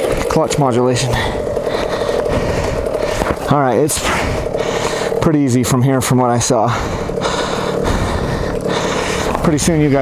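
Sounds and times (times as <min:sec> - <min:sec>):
dirt bike engine running: 0:00.0 - 0:10.0.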